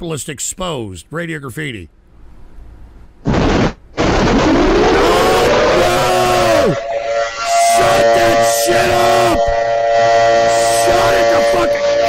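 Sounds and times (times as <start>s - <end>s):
harsh distorted phone noise: 3.2s - 12.0s
sliding pitched tone: 3.3s - 12.0s.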